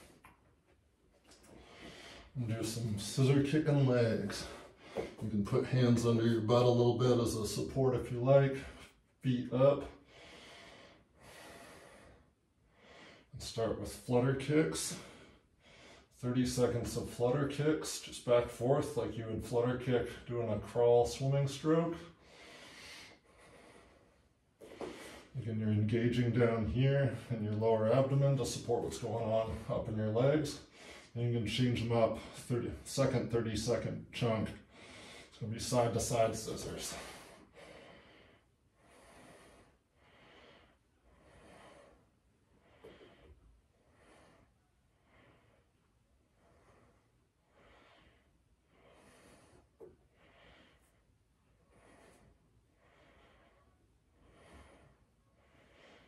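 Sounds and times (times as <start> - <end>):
man breathing heavily: 1.4 - 5.3, 9.8 - 13.3, 14.7 - 16.2, 21.9 - 25.4, 30.6 - 31.2, 34.6 - 35.4, 36.1 - 56.0.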